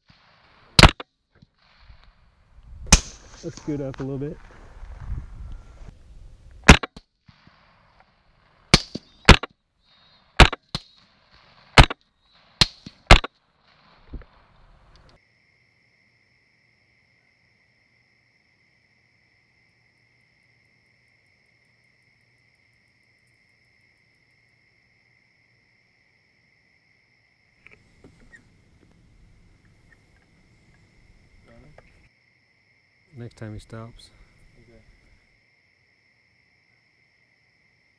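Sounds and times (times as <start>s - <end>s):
rifle shots: 0.7s - 1.0s, 2.9s - 3.5s, 6.6s - 7.0s, 8.7s - 9.5s, 10.4s - 11.0s, 11.7s - 12.0s, 12.6s - 13.3s.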